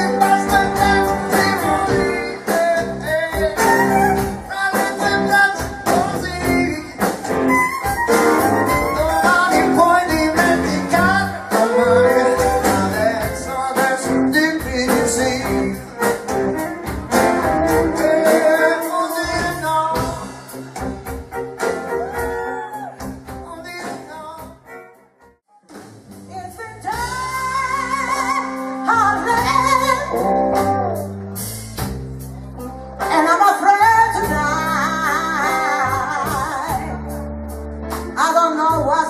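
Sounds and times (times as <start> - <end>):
drums steady beat: 0.0 - 24.8, 25.6 - 32.5, 33.1 - 37.1
live blues-rock band: 0.0 - 25.1, 25.7 - 39.0.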